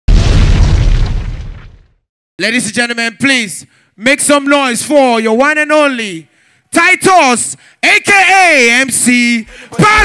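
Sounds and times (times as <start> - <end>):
deep boom sound effect: 0.1 - 2.0.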